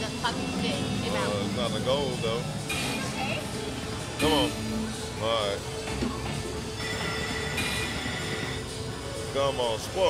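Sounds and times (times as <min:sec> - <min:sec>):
slot machine spin tones: 0:06.6 - 0:10.0.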